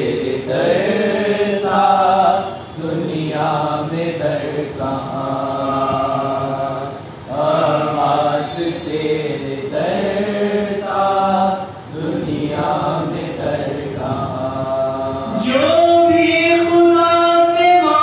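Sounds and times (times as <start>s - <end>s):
young men chanting without instruments: 0.0s - 18.0s.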